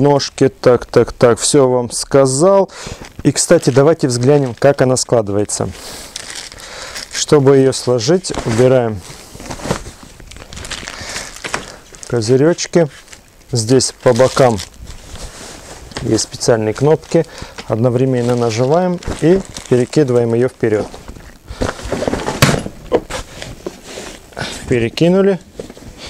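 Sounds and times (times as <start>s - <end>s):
fabric rustling: 3.2s - 13.2s, 13.9s - 24.3s.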